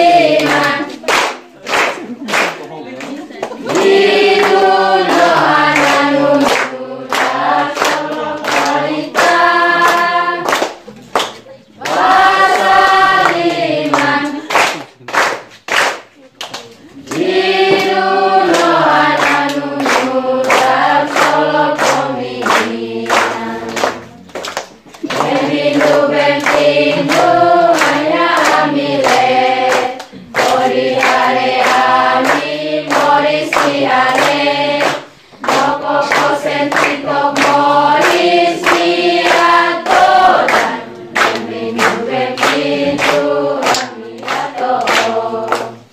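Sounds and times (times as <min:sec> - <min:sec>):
children singing together: 0:00.0 - 0:01.2, 0:03.6 - 0:10.6, 0:11.8 - 0:14.5, 0:17.1 - 0:24.0, 0:25.0 - 0:45.9
people clapping in time: 0:00.0 - 0:45.9.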